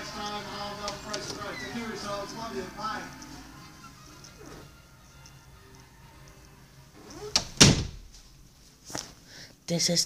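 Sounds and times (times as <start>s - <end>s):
door shutting: 0.8s - 2.2s, 7.0s - 8.2s.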